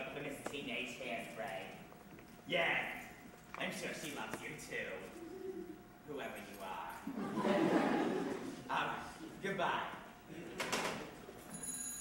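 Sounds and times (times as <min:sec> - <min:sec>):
telephone ringing: 0:11.5 - 0:12.0.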